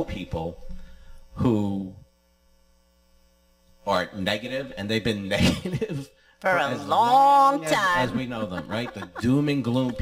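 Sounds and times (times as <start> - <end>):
faint mains hum: 0.0 - 10.0
man talking: 1.4 - 2.0, 3.9 - 10.0.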